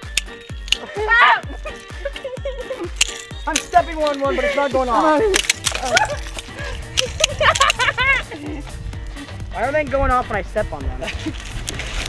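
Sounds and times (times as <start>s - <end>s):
background music: 0.0s - 12.0s
voices: 0.5s - 11.2s
mousetraps snapping shut: 2.9s - 4.3s, 5.3s - 7.8s.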